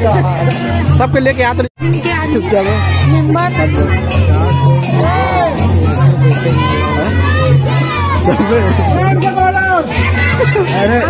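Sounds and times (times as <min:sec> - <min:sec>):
crowd calling and shouting: 0:00.0 - 0:11.0
rhythmic percussion music: 0:00.0 - 0:11.0.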